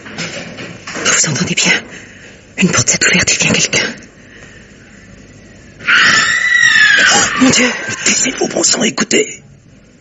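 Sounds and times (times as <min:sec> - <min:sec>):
woman screaming: 0:05.9 - 0:08.0.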